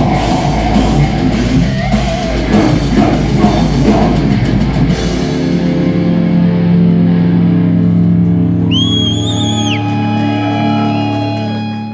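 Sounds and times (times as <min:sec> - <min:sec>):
heavy metal band playing: 0:00.0 - 0:11.9.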